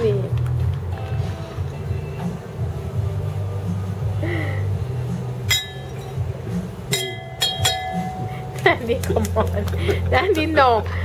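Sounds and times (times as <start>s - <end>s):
wine glasses clinking: 5.4s - 8.6s.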